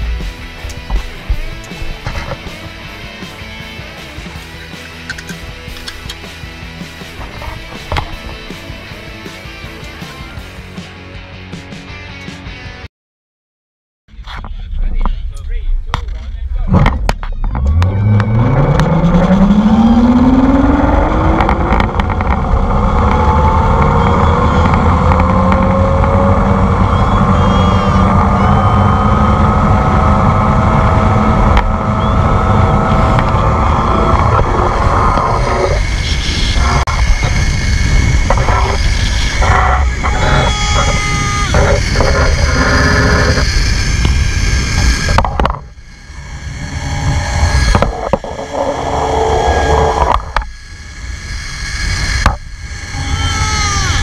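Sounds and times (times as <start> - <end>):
wind rushing over microphone: 14.4 - 54.0
zip-line trolley whine: 17.5 - 54.0.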